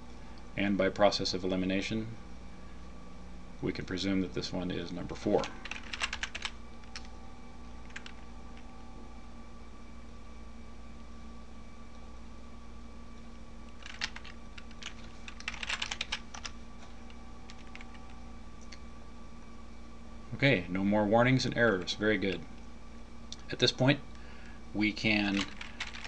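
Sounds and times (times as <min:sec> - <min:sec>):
faint hum: 0:00.0 - 0:26.0
computer keyboard typing: 0:05.4 - 0:07.1, 0:07.8 - 0:08.2, 0:13.8 - 0:16.6, 0:17.5 - 0:18.0, 0:25.3 - 0:26.0.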